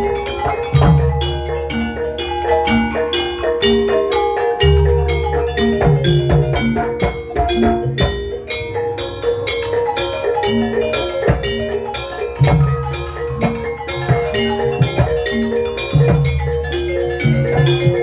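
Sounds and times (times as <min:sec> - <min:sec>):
drum strokes: 0:00.0 - 0:18.0
tuned metal percussion: 0:00.0 - 0:18.0.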